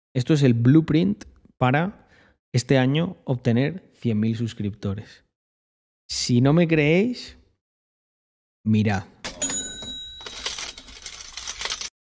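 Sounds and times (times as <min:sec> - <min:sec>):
brief ringing chime: 0:09.4 - 0:10.4.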